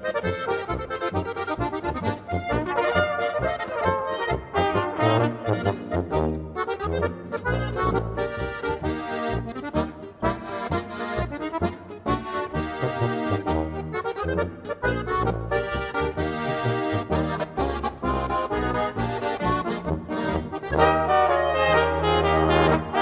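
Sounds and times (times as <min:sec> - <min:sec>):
accordion melody: 0:00.0 - 0:23.0
guitar accompaniment: 0:00.0 - 0:23.0
oom-pah tuba bass: 0:00.0 - 0:23.0.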